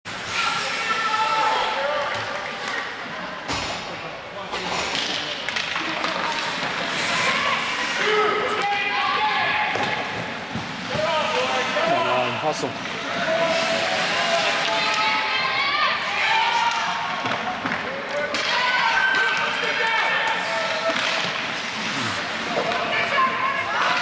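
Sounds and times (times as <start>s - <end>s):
hockey sticks and puck knocking: 4.5s - 6.8s, 16.5s - 21.5s.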